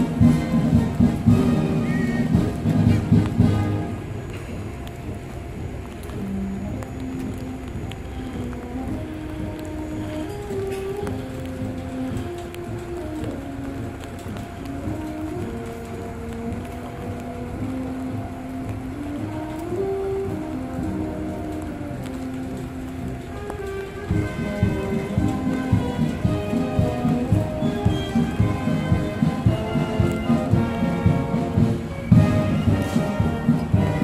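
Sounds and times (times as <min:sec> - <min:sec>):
low background rushing noise: 0:00.0 - 0:34.0
military band playing slow melody: 0:00.0 - 0:34.0.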